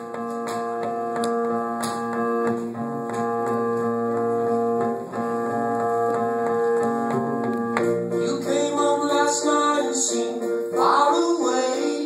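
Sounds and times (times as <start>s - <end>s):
guitar notes: 0.0s - 8.7s
plucked bass: 0.0s - 9.2s
electric keyboard chords: 0.0s - 12.0s.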